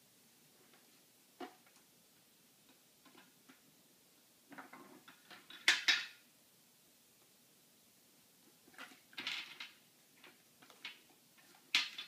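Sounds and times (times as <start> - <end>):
wooden pieces clacking together: 4.5 - 6.2, 8.6 - 12.0.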